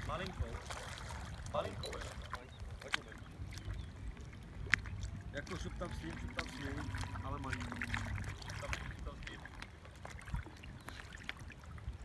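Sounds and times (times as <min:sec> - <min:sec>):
low wind rumble on microphone: 0:00.0 - 0:12.0.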